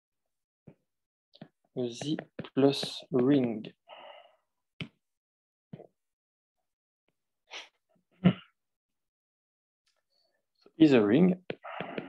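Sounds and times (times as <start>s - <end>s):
man breathing in: 11.6s - 12.0s.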